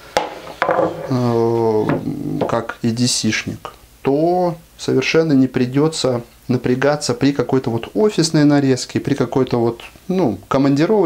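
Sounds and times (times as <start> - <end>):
knock on wooden cutting board: 0.2 - 1.1.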